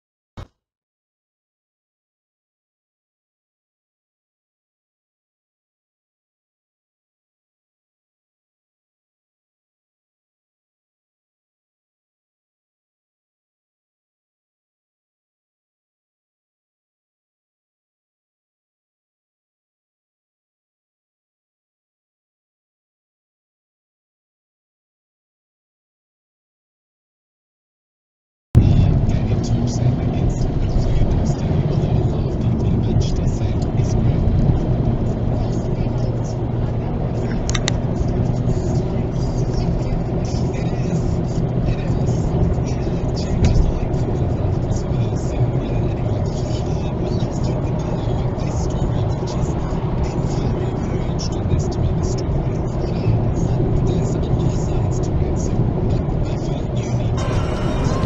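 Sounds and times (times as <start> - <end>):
road and engine rumble in car: 28.6 - 58.0.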